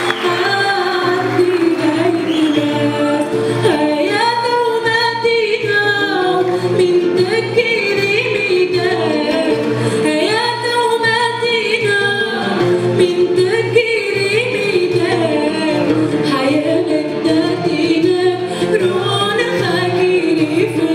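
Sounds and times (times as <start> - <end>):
acoustic guitars: 0.0 - 20.9.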